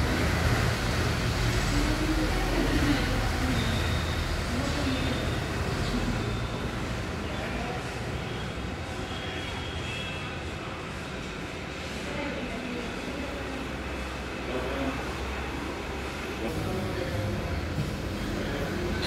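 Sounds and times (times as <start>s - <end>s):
faint indistinct voices: 0.0s - 19.0s
traffic rumble: 0.0s - 19.0s.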